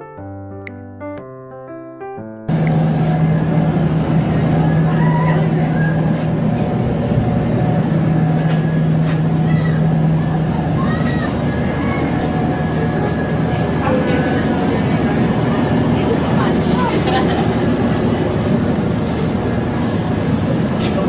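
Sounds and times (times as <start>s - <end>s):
air conditioner humming: 2.5s - 21.0s
indistinct voices: 2.6s - 21.0s.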